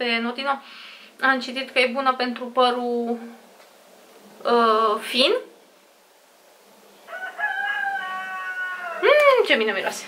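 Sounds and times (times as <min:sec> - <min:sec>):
rooster crowing: 0:07.0 - 0:09.4.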